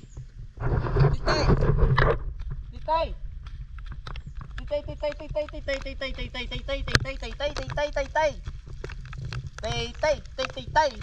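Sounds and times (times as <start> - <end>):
man calling rapidly: 4.6 - 8.4, 9.6 - 11.0.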